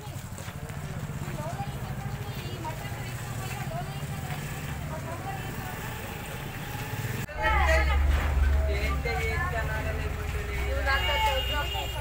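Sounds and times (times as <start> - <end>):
people talking: 0.0 - 12.0
low hum: 7.3 - 10.4
low rumble: 7.3 - 10.7.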